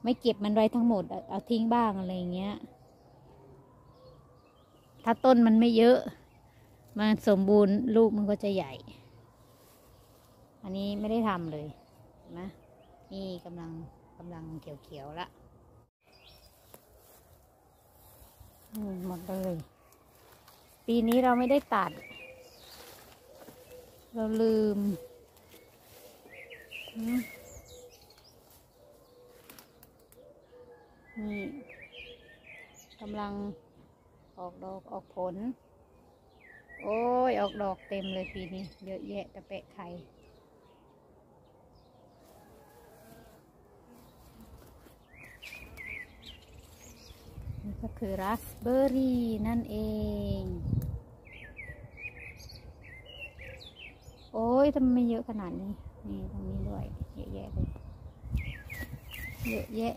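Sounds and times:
woman speaking: 0:00.0 - 0:02.7, 0:05.1 - 0:06.2, 0:07.0 - 0:09.0, 0:10.6 - 0:15.3, 0:18.7 - 0:19.7, 0:20.9 - 0:22.1, 0:24.2 - 0:25.0, 0:26.9 - 0:27.4, 0:31.2 - 0:31.7, 0:34.4 - 0:35.6, 0:36.8 - 0:40.1, 0:47.6 - 0:50.7, 0:54.4 - 0:57.7, 0:59.4 - 0:59.9
birds chirping: 0:00.0 - 0:43.0, 0:43.7 - 0:59.9
songbird warbling and trilling: 0:18.1 - 0:29.4, 0:55.0 - 0:59.9.

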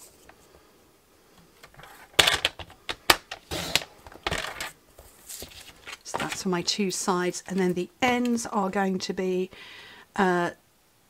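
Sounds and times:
paper handling: 0:04.5 - 0:06.5.

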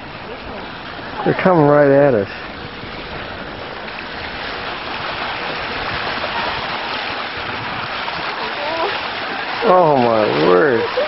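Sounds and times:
choppy sea water splashing: 0:00.0 - 0:11.0.

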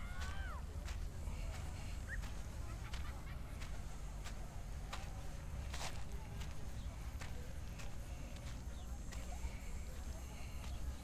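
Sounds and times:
footsteps on stony path: 0:00.0 - 0:11.0.

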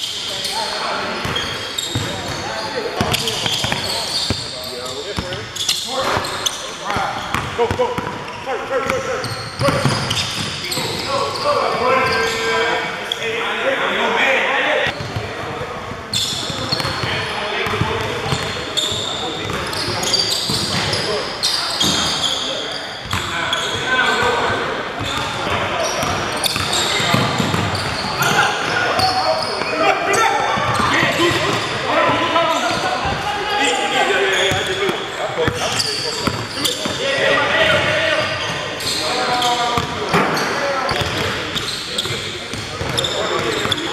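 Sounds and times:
sneakers squeaking: 0:00.0 - 0:13.4, 0:14.8 - 0:43.9
players calling out: 0:00.0 - 0:15.3, 0:16.1 - 0:43.9
basketball bouncing: 0:03.0 - 0:04.4, 0:26.0 - 0:28.0, 0:36.2 - 0:37.0.

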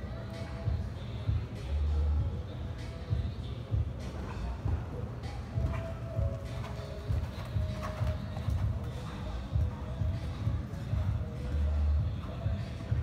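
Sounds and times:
faint music: 0:00.0 - 0:13.0
horse hoofbeats on sand: 0:03.1 - 0:13.0.

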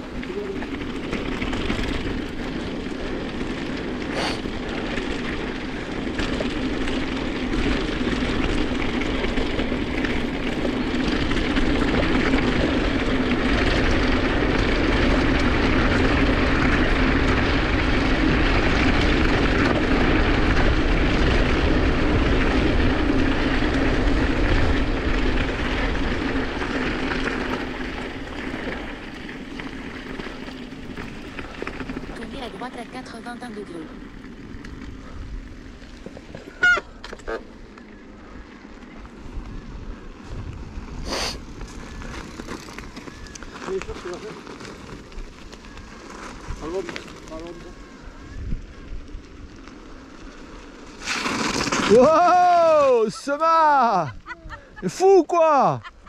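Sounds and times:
bike tyres rolling over gravel: 0:00.0 - 0:56.0
wind buffeting microphone: 0:38.0 - 0:50.8.

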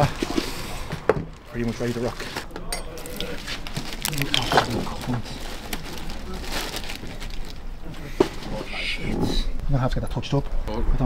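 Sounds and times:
plastic wrapper crinkling: 0:01.3 - 0:08.7.

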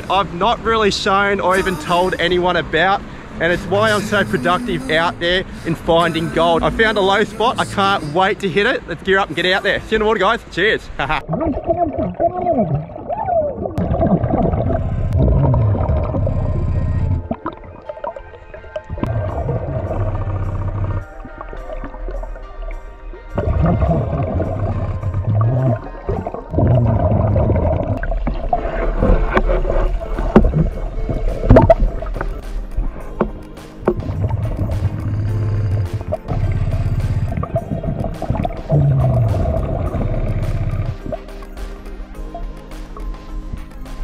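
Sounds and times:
background music: 0:00.0 - 0:11.2, 0:14.0 - 0:44.0
diver bubbling exhalations: 0:11.2 - 0:17.7, 0:23.4 - 0:32.2, 0:33.9 - 0:41.2.

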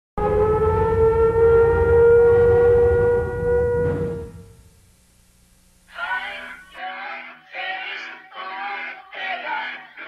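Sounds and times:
air-raid siren wailing: 0:00.2 - 0:04.6
low rumble: 0:00.2 - 0:04.9.

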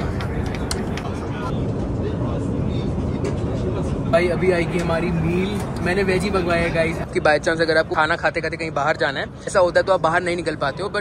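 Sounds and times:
aircraft cabin rumble: 0:00.0 - 0:07.1
faint passenger voices: 0:00.0 - 0:11.0.

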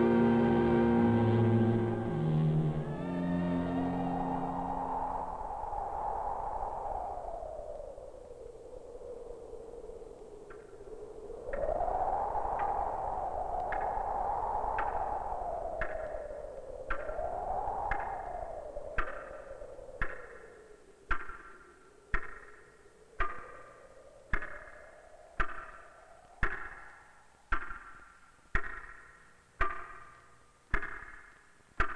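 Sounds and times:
eerie wavering electronic tone: 0:00.0 - 0:05.5.

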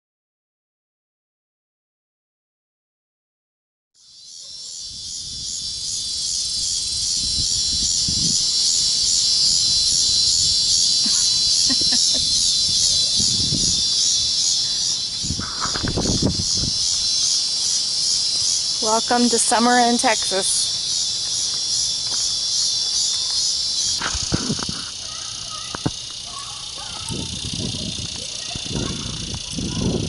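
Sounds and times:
insects buzzing: 0:04.0 - 0:30.0.

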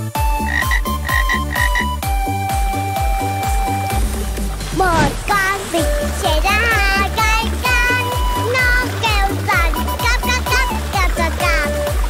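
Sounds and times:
children's song with drum beat: 0:00.0 - 0:12.0
cartoon frog croaking: 0:00.4 - 0:02.0.

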